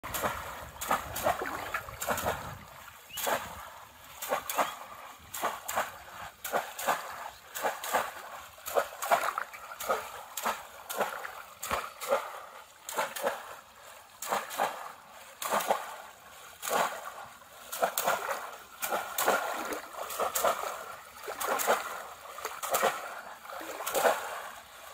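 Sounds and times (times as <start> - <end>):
fish traps splashing in water: 0.0 - 24.9.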